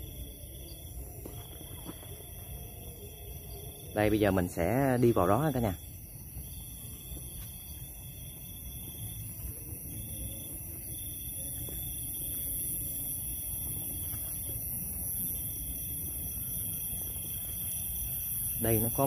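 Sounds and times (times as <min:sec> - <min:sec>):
night insects trilling: 0:00.0 - 0:19.0.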